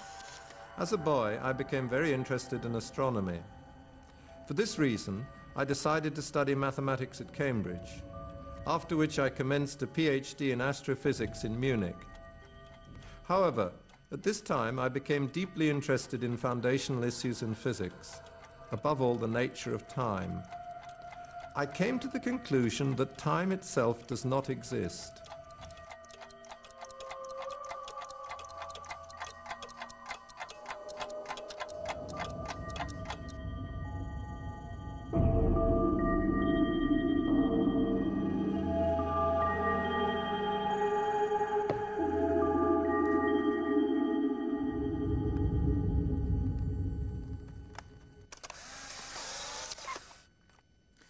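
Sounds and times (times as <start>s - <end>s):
low droning ambient music: 0.0s - 51.0s
clock ticking fast: 16.2s - 33.5s
held tones: 23.9s - 50.2s
low rumble: 32.3s - 40.5s, 41.8s - 48.2s
whirring hissing mechanical sound: 48.3s - 50.3s.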